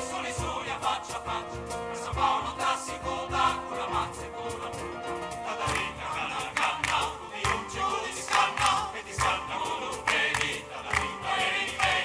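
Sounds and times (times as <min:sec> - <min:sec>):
choir singing: 0:00.0 - 0:12.0
drums: 0:00.0 - 0:12.0
piano ensemble: 0:00.0 - 0:12.0.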